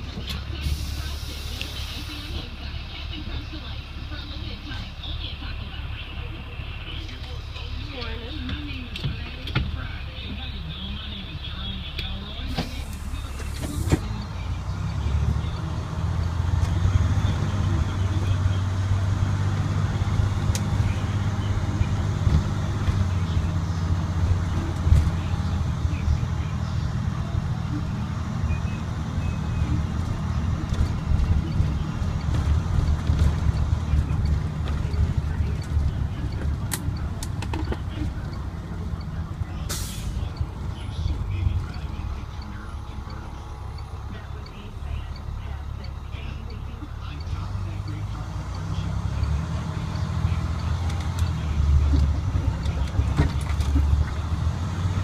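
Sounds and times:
diesel bus engine running: 0.0 - 55.0.

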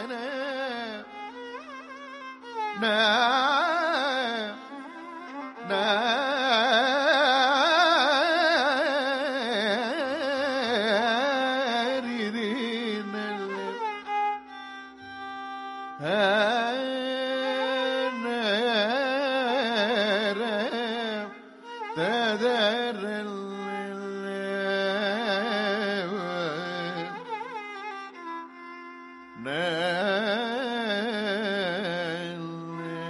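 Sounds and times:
indian classical melody with oscillations: 0.0 - 33.0
man singing a long note: 22.0 - 27.3, 29.4 - 33.0.

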